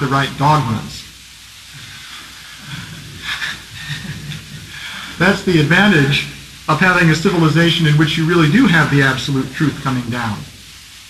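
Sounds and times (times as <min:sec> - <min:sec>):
faint low murmurs: 0:00.0 - 0:11.0
recording hiss: 0:00.0 - 0:11.0.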